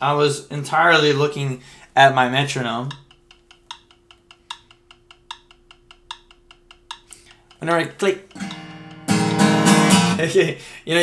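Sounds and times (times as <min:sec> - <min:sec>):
metronome app clicking fast: 0:02.7 - 0:10.2.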